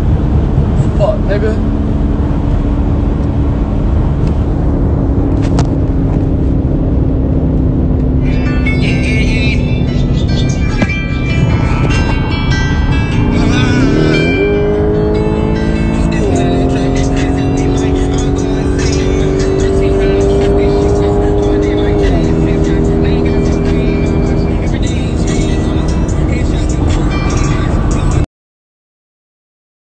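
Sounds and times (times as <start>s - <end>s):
car engine accelerating: 0.0s - 28.2s.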